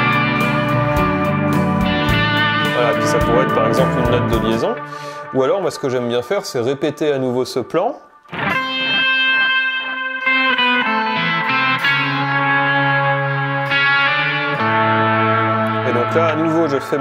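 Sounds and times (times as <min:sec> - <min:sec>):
electric guitar lead with vibrato: 0:00.0 - 0:05.5, 0:08.2 - 0:17.0
looped backing music: 0:00.0 - 0:06.1, 0:08.3 - 0:17.0.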